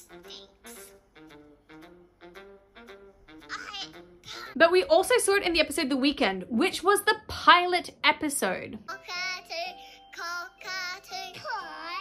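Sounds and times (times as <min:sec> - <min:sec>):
cartoon child voice singing: 0:08.9 - 0:12.0.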